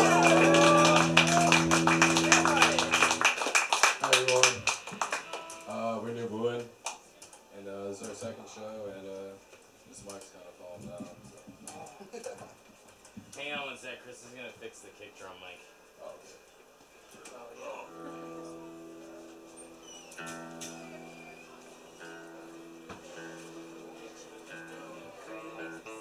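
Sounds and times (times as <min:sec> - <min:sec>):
rock band final chord: 0:00.0 - 0:03.6
people clapping: 0:00.0 - 0:05.8.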